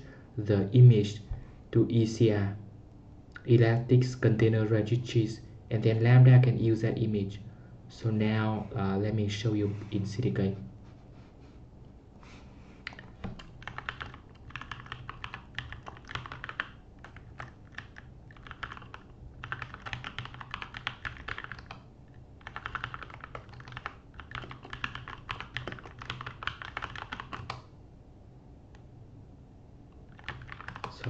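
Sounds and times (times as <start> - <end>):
computer keyboard typing: 12.8 - 27.7, 30.1 - 31.0.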